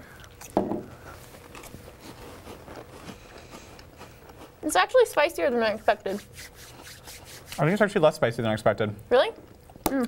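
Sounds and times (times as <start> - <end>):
cracker being chewed: 0.1 - 4.6.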